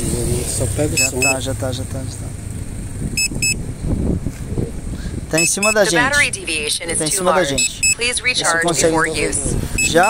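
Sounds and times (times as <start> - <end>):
short electronic beeps: 0.9 - 1.4, 3.2 - 3.6, 5.4 - 6.3, 7.3 - 8.3, 9.8 - 10.0.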